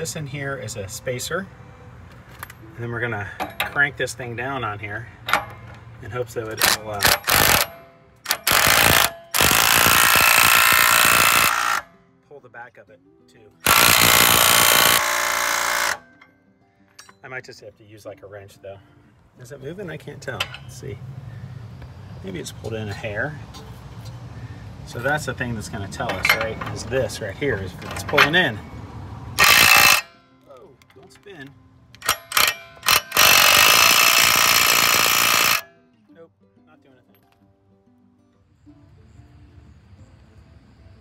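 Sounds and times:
impact wrench hammering: 5.3s - 5.9s, 6.6s - 11.9s, 13.7s - 16.2s, 29.4s - 30.2s, 32.0s - 35.7s.

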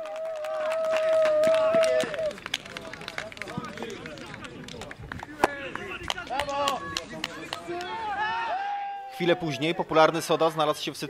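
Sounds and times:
people shouting: 6.3s - 9.6s.

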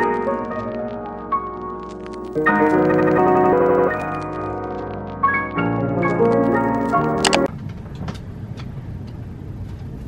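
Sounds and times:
low outdoor rumble: 0.2s - 10.0s.

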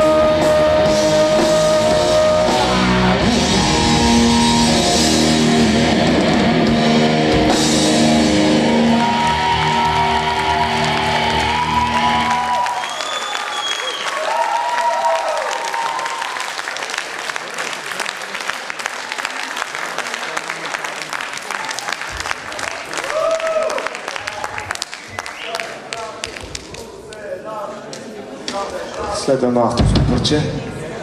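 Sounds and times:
rock band final chord: 0.0s - 12.3s
audience shouts: 2.4s - 5.8s, 8.5s - 16.6s, 22.9s - 24.8s
audience applauding: 8.3s - 27.2s.

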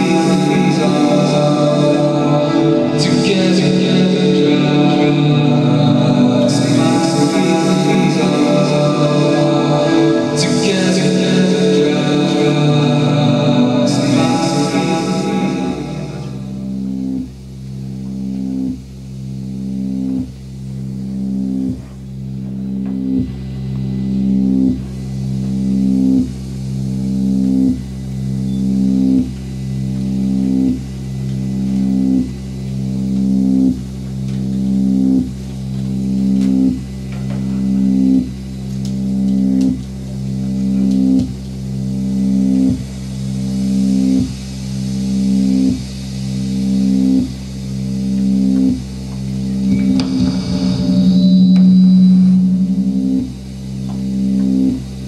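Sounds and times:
low synthesizer drone: 0.0s - 55.0s.

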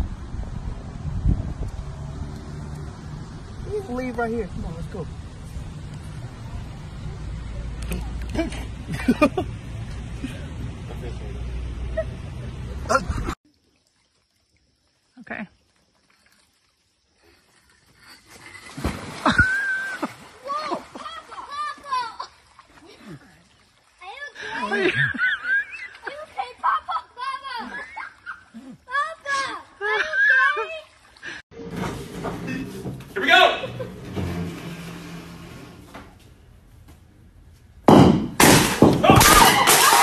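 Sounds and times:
heavy splash into water: 18.6s - 21.7s
ball striking with a bang: 37.9s - 40.0s
people shouting: 39.0s - 40.0s.

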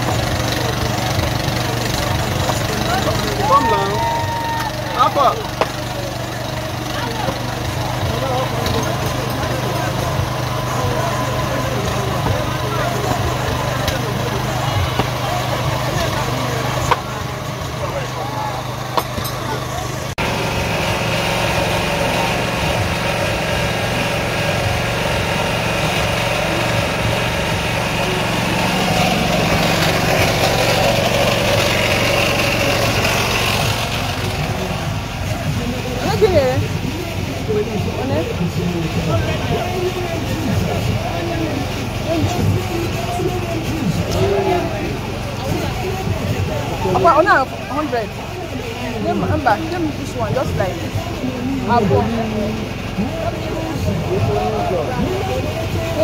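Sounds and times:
people chattering: 0.0s - 56.0s
small engine running: 0.0s - 56.0s.

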